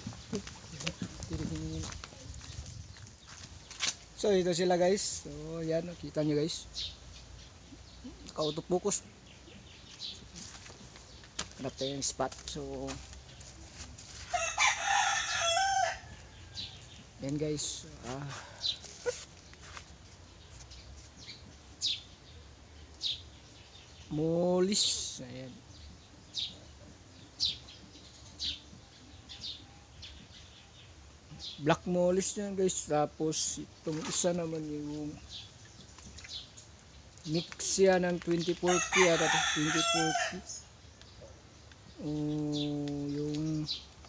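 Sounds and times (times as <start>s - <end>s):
small birds chirping: 0.0s - 44.0s
man talking: 0.3s - 2.3s, 4.2s - 6.7s, 8.1s - 9.1s, 11.6s - 13.1s, 17.2s - 18.6s, 24.1s - 25.6s, 31.6s - 35.2s, 37.2s - 40.6s, 42.0s - 43.7s.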